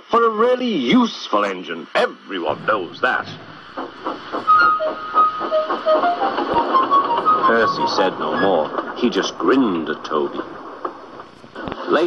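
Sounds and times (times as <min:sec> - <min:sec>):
steam engine puffing: 0:02.4 - 0:12.0.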